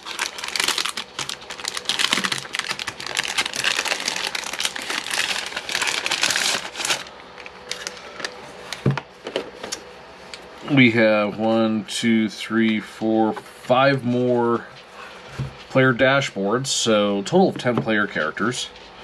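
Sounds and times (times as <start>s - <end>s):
plastic wrapping crinkling: 0.0s - 8.4s.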